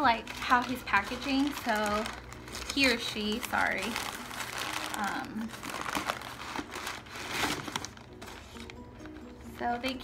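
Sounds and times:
newspaper crumpling and rustling: 0.0s - 10.0s.

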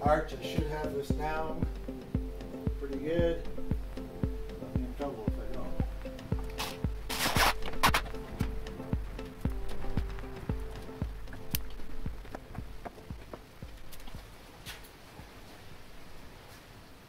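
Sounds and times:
music with steady beat: 0.0s - 14.4s.

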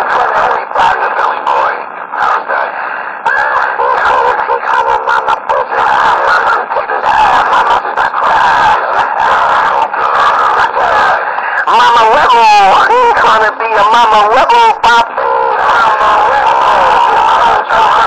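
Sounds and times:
distorted shouting over two-way radio: 0.0s - 18.0s.

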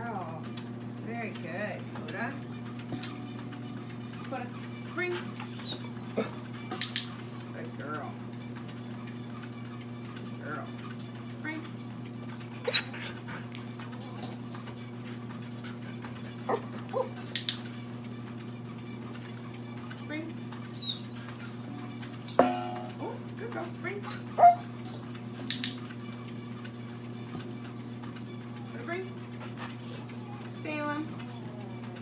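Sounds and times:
steady low hum: 0.0s - 32.0s
dog crying: 5.2s - 6.4s, 12.6s - 14.4s, 15.6s - 17.2s, 24.0s - 25.0s, 29.4s - 30.3s
steel bowl clinking: 22.4s - 23.2s
low hum: 22.4s - 24.9s.

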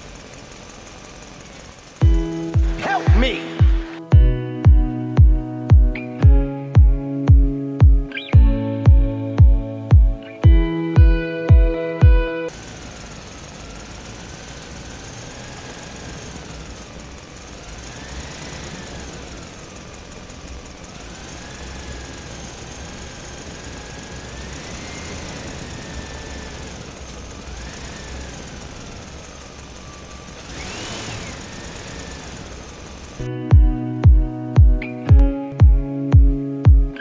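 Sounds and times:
toy vehicle motor whine: 12.5s - 33.3s.

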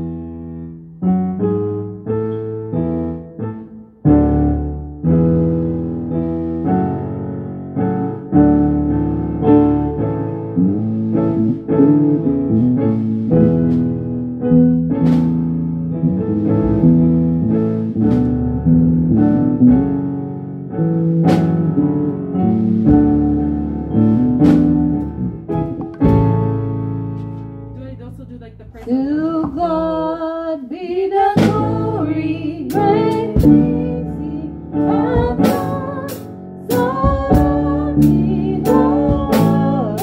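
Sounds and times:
electric bass: 0.0s - 30.4s, 31.1s - 40.0s
keyboard chords: 0.0s - 30.4s, 31.1s - 40.0s
person singing with vibrato: 28.7s - 40.0s.

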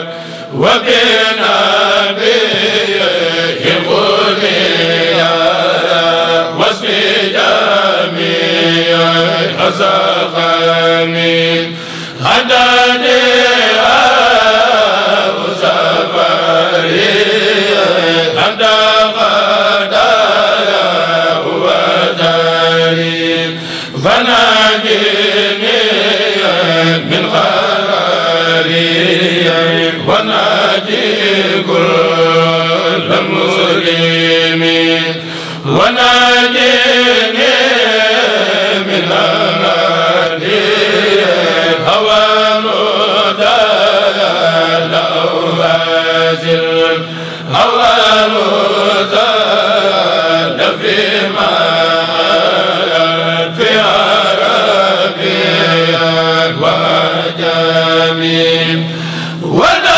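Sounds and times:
group of men chanting: 0.0s - 59.9s.

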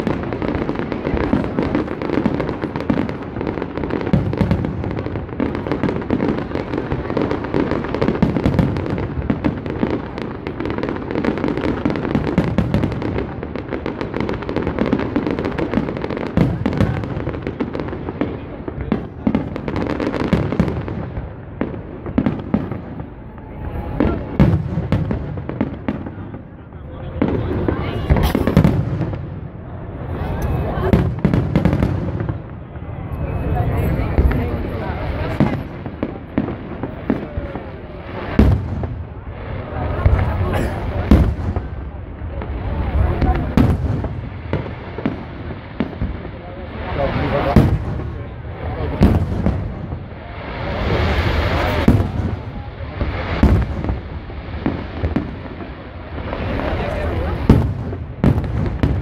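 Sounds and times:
fireworks bangs and crackling: 0.0s - 59.0s.

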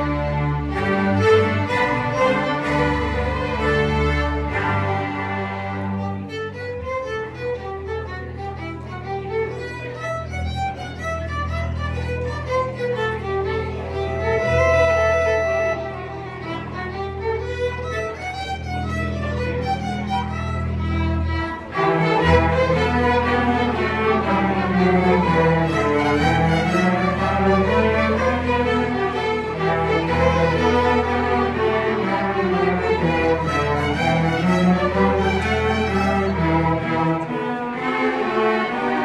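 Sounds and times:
string orchestra playing: 0.0s - 39.0s.

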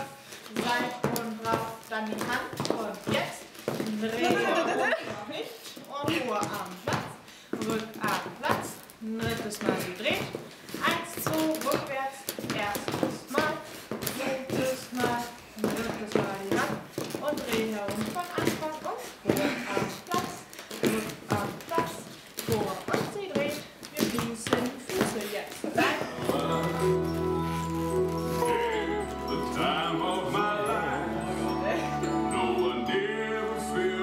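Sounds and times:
feet tapping on a hard floor: 0.4s - 5.2s, 6.0s - 28.7s
music with chords and bass: 26.1s - 34.0s.

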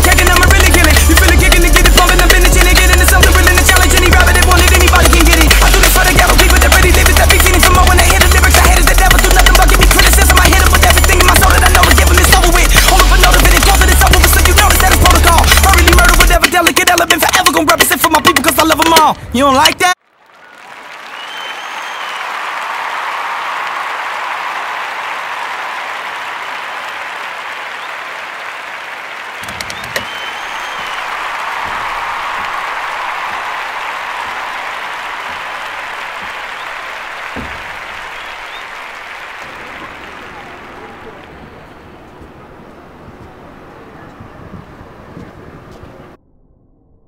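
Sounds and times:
crowd applauding: 0.0s - 19.0s, 19.6s - 44.0s
voices: 37.6s - 46.1s.

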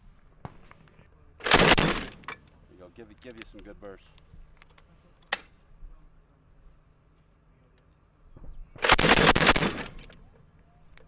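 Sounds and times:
grenade launcher firing burst: 1.4s - 2.2s, 8.8s - 10.0s.

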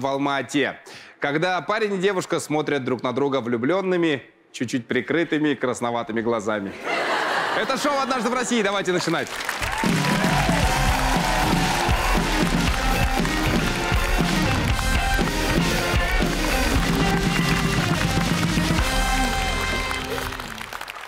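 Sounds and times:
drum kit playing: 9.7s - 20.6s
live band music: 9.7s - 20.8s.

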